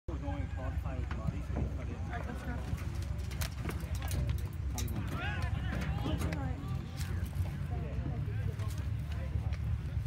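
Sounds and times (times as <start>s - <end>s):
voices calling across a field: 0.1s - 10.0s.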